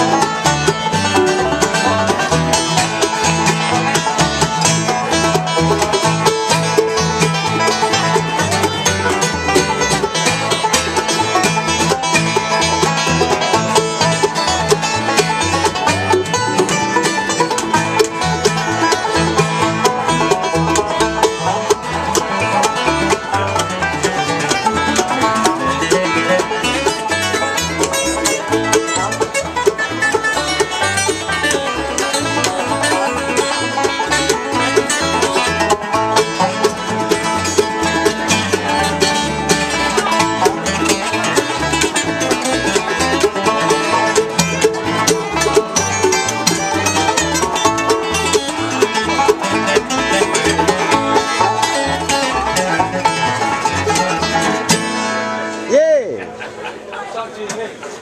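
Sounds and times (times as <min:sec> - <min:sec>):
bluegrass band playing: 0:00.0 - 0:58.0.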